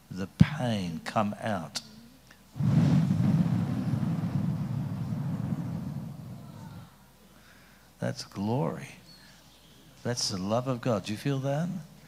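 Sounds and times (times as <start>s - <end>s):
breath blown across microphone: 2.6s - 6.6s.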